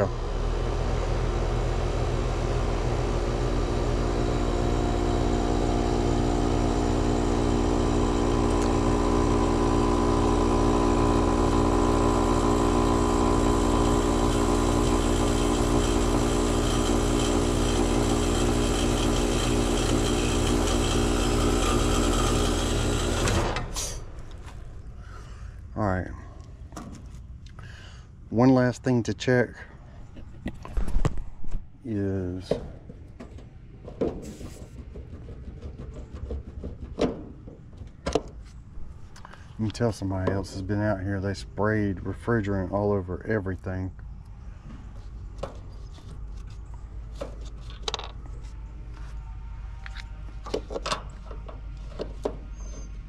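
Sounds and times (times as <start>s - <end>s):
air conditioner unit humming: 0.0s - 53.0s.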